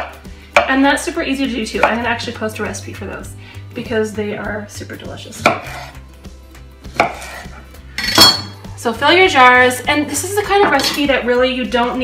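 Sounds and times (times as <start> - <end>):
knife cutting cucumber on board: 5.4 - 6.0, 6.9 - 7.7.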